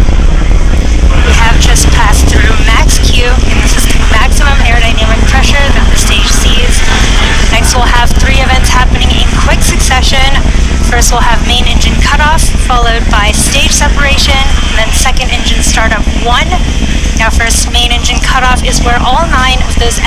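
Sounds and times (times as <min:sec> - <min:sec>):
rocket engines rumbling: 0:00.0 - 0:20.0
voices: 0:00.8 - 0:20.0.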